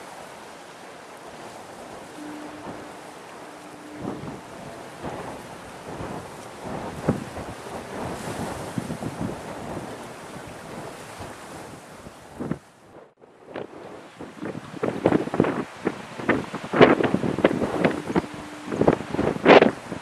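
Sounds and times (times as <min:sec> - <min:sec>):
faint steady hum: 0:00.0 - 0:20.0
harbour water washing: 0:00.0 - 0:20.0
wind buffeting microphone: 0:00.0 - 0:20.0.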